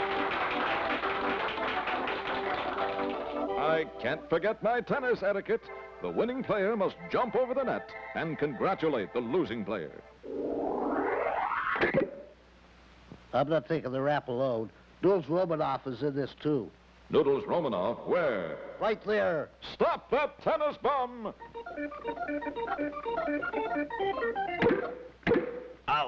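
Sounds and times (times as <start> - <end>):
bouncy organ cartoon music: 0.0 - 12.3, 20.6 - 25.8
cartoon leap sound effect: 10.3 - 12.3.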